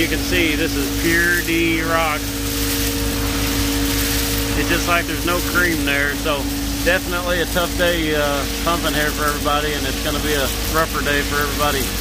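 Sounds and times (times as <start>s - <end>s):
concrete pump engine drone: 0.0s - 12.0s.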